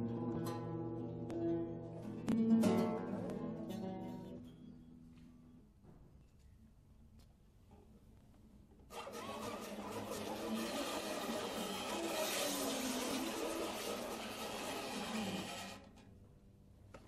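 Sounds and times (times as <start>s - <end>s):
guitar ensemble noisy texture: 0.0s - 4.7s.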